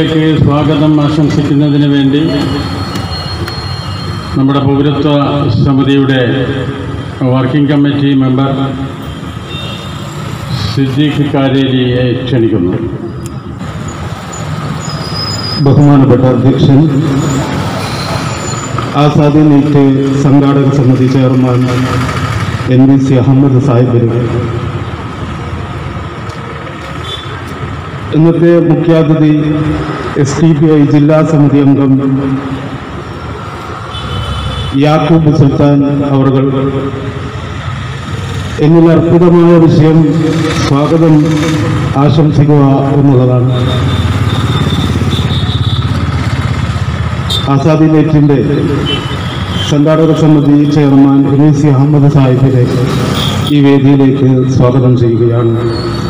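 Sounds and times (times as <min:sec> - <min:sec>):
heavy vehicle passing: 0:00.0 - 0:56.0.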